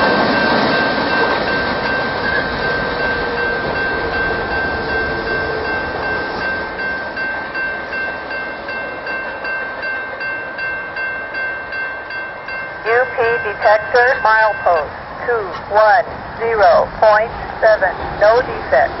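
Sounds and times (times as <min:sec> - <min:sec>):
crossing warning bell ringing: 0:00.0 - 0:19.0
freight train wheels rumbling: 0:00.0 - 0:19.0.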